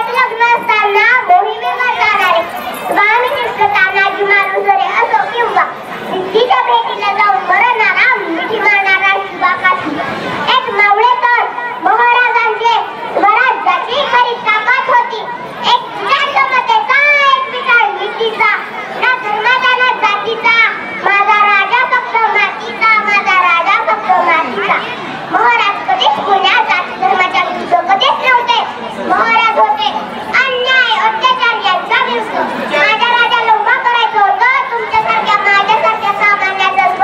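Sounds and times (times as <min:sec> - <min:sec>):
girl giving a speech into microphone: 0:00.0 - 0:37.0.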